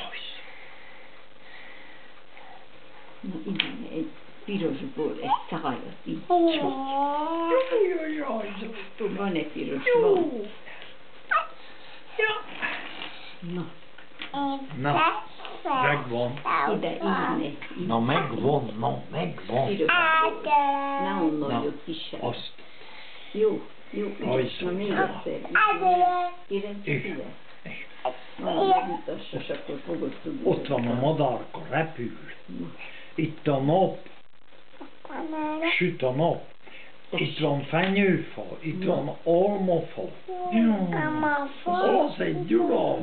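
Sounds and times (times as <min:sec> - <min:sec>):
low hiss of room tone: 0:00.0 - 0:43.0.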